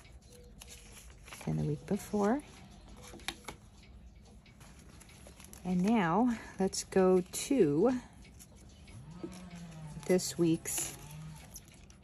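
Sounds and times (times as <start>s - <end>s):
pages turning: 0.2s - 1.9s.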